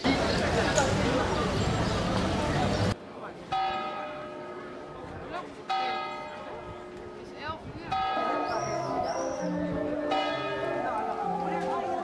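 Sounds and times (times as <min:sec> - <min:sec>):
tower clock bell striking: 0:07.9 - 0:08.5.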